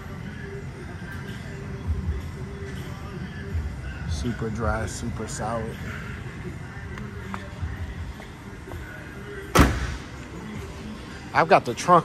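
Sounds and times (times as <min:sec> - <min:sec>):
car door slam: 0:09.5 - 0:10.1.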